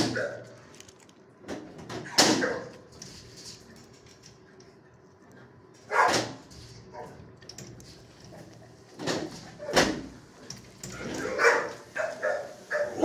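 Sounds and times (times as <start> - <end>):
dog barking sharply: 5.9 - 6.4, 11.4 - 13.0.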